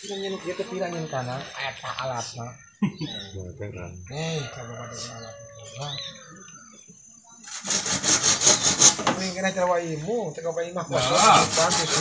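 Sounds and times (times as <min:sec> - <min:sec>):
hand saw cutting bamboo: 0:07.4 - 0:09.2, 0:11.0 - 0:12.0.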